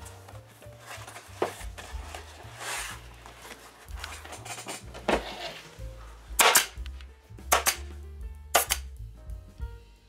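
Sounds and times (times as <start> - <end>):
pneumatic stapler firing: 6.4 - 6.8, 7.5 - 7.8, 8.6 - 8.9.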